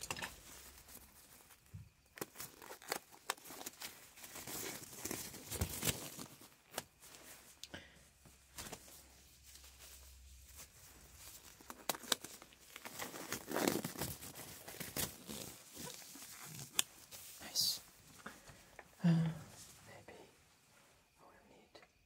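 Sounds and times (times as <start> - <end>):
rubber gloves crinkling: 0.0 - 18.9
glove snaps and clicks: 11.6 - 12.6, 16.5 - 16.9.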